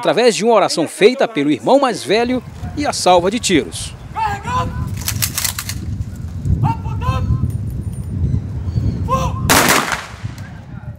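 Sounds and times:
rifle volley crack: 0:09.5 - 0:10.6.

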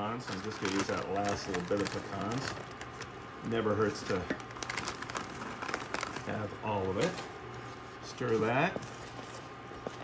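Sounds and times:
plastic bag crinkling: 0:00.0 - 0:07.2.

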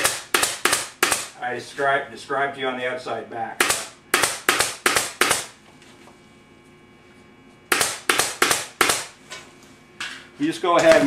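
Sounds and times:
pneumatic staple gun firing: 0:00.0 - 0:01.3, 0:03.6 - 0:05.6, 0:07.7 - 0:09.2.

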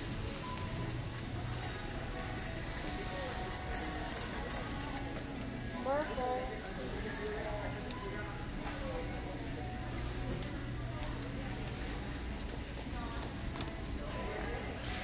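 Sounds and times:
faint background music: 0:00.0 - 0:15.0
faint distant voices: 0:00.0 - 0:15.0.

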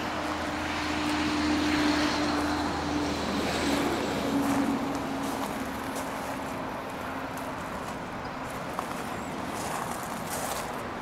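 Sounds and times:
distant engine hum: 0:00.0 - 0:11.0.

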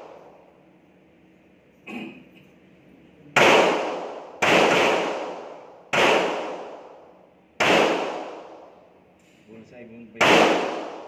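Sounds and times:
handgun shots echoing indoors: 0:03.4 - 0:07.0, 0:07.6 - 0:09.4, 0:10.2 - 0:11.0.

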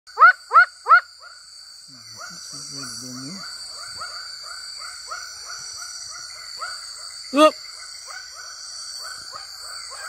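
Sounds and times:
high-pitched insect drone: 0:00.1 - 0:10.0
tree frog calling: 0:00.1 - 0:10.0.

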